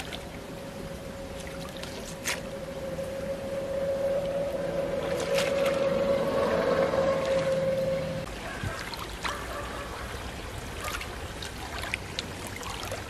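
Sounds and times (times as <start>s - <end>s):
steady hum: 0.0s - 8.5s
light splashes from wading: 8.7s - 13.0s
stream water running over stones: 10.2s - 13.0s.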